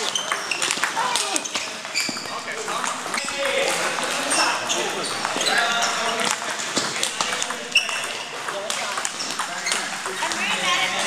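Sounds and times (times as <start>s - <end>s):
people chattering: 0.0s - 11.0s
table tennis balls clicking: 0.0s - 11.0s.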